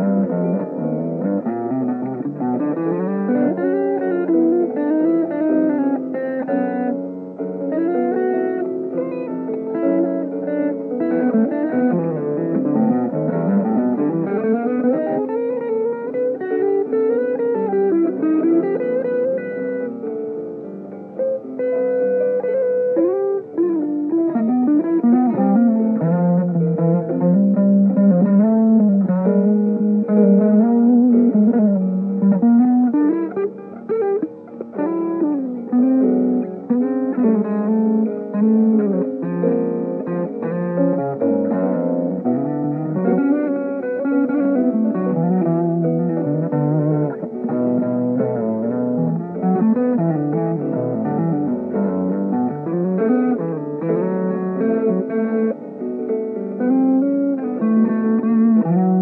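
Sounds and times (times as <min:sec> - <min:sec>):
solo guitar melody: 0:00.0 - 0:59.0.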